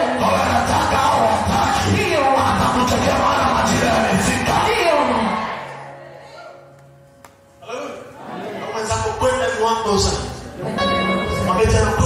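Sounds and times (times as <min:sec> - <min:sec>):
loud worship music: 0:00.0 - 0:06.6, 0:09.2 - 0:12.0
congregation voices: 0:00.0 - 0:12.0.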